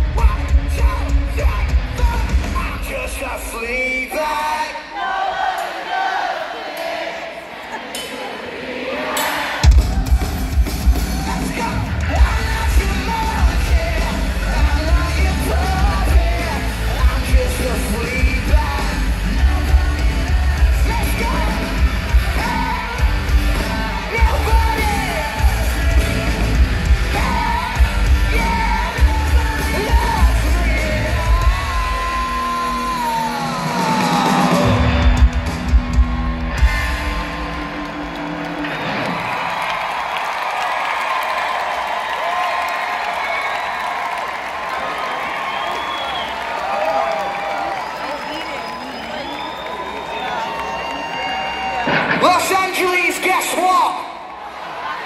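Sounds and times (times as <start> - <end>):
live rock band playing: 0.0 - 3.2, 9.6 - 39.4
crowd cheering: 0.0 - 55.0.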